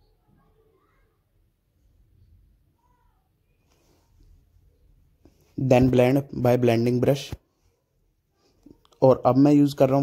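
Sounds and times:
faint scratchy rustle: 3.5 - 5.6.

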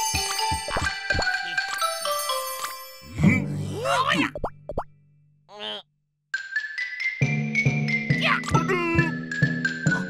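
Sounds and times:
cartoon wordless voices: 3.5 - 4.4, 5.5 - 5.9, 8.1 - 10.0.

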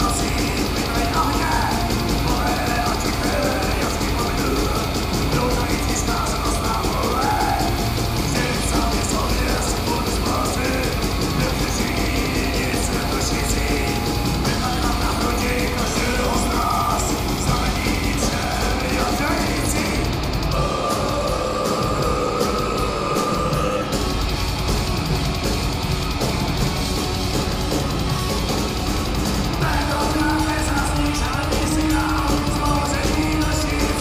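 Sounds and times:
distorted electric guitars: 0.0 - 34.0
drums: 0.0 - 34.0
metal band playing live: 0.0 - 34.0.

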